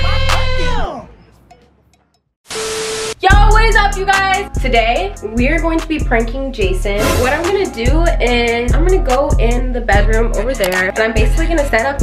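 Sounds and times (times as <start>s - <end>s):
music: 0.0s - 2.3s, 3.1s - 12.0s.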